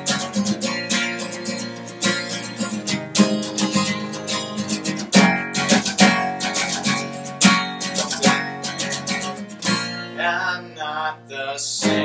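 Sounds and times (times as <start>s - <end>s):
acoustic bass guitar: 0.0s - 12.0s
acoustic guitar strumming: 0.0s - 12.0s
person singing: 10.1s - 12.0s.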